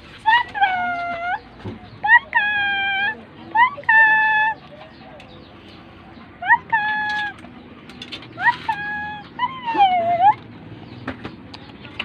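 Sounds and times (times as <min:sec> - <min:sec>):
puppy whining: 0:00.2 - 0:10.6.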